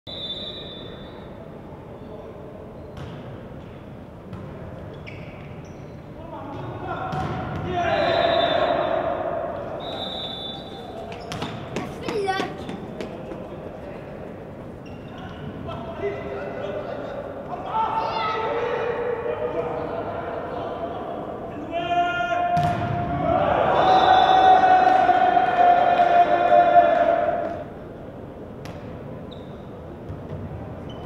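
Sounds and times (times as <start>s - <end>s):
volleyball bouncing and being struck: 22.6s - 23.1s
people shouting: 23.2s - 27.5s.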